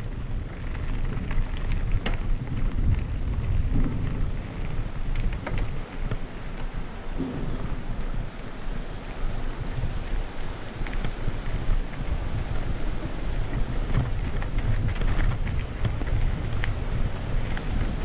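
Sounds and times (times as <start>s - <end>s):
wind buffeting microphone: 0.0s - 18.0s
small clicks and rattles: 0.4s - 7.3s, 13.3s - 18.0s.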